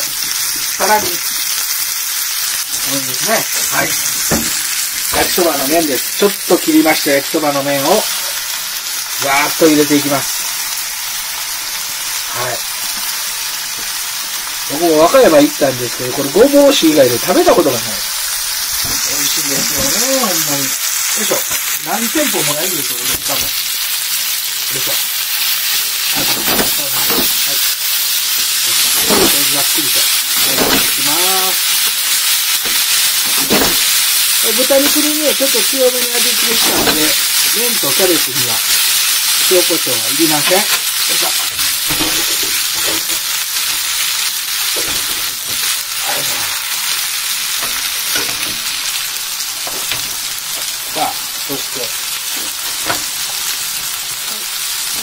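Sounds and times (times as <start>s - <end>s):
food sizzling in a frying pan: 0.0s - 55.0s.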